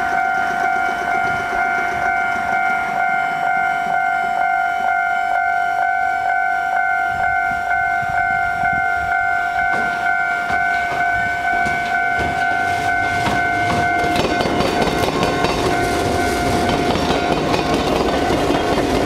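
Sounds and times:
train wheels clattering: 0:00.0 - 0:03.6, 0:09.6 - 0:19.0
level crossing warning bell: 0:00.0 - 0:19.0.

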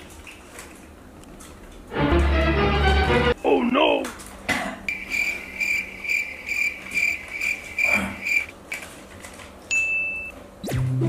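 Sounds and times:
cricket chirping: 0:04.9 - 0:08.5.

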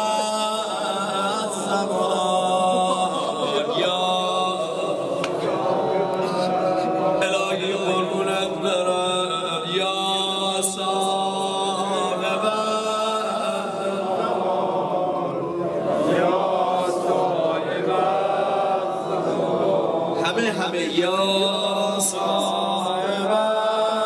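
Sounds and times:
many voices chanting lament: 0:00.0 - 0:24.0.

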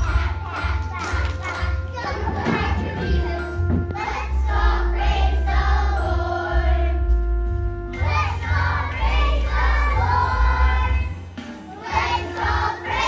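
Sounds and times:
children singing: 0:00.0 - 0:07.0, 0:08.0 - 0:13.0
backing track with heavy bass: 0:01.8 - 0:12.9.

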